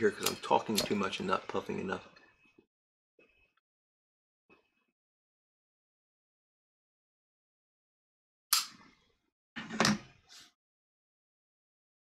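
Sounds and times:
sharp click: 8.5 - 8.8.

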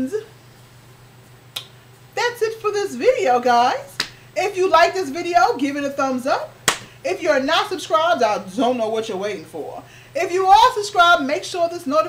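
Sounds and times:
faint steady hum: 0.0 - 12.0
sharp click: 1.5 - 1.8
person speaking: 2.2 - 6.4.

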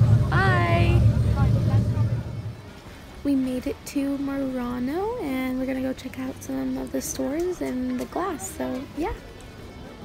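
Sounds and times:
boat engine low rumble: 0.0 - 3.4
faint voices: 0.0 - 10.0.

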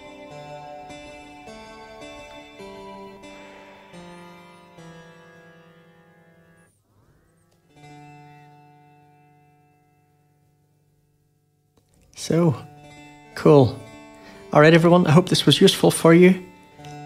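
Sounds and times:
plucked notes with long reverb: 11.8 - 17.0.

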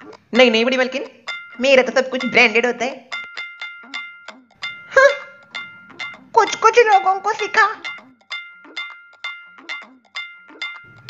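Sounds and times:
bright metallic bell notes: 1.3 - 11.0.

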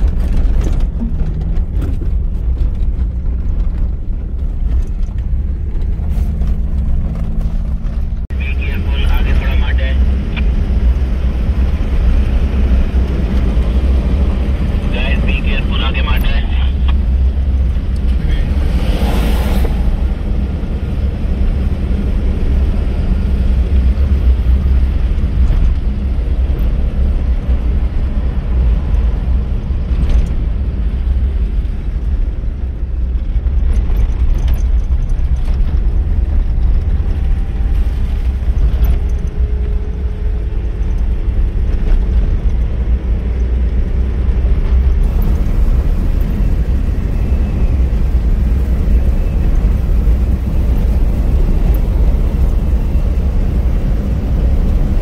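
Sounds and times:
engine and tyres rumbling on sand: 0.0 - 55.0.

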